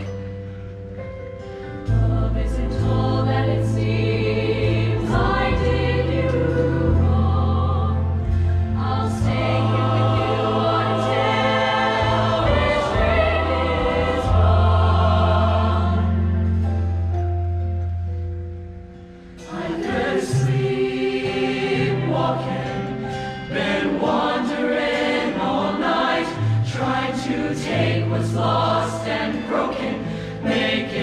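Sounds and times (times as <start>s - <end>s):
choir singing in harmony: 0.0s - 0.8s, 1.4s - 17.2s, 19.4s - 31.0s.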